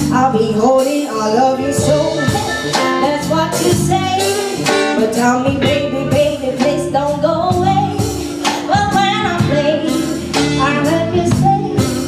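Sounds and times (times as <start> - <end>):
electric bass: 0.0 - 12.0
woman singing: 0.0 - 12.0.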